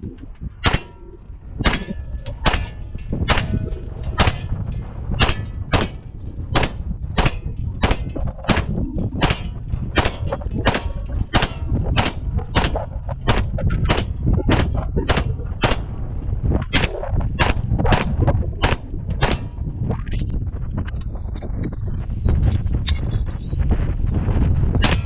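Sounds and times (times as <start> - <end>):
gun firing single shots: 1.6 - 4.6, 5.2 - 6.0, 6.6 - 15.9, 16.8 - 19.5.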